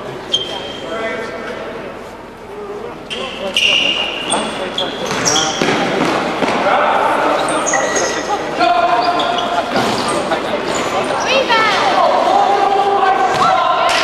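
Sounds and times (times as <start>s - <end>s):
shoes squeaking on court floor: 0.3s - 0.9s, 3.1s - 6.4s, 7.2s - 11.5s.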